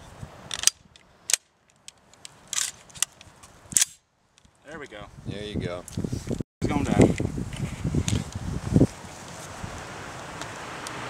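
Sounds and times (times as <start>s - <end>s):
rifle action clacking: 0.5s - 3.2s.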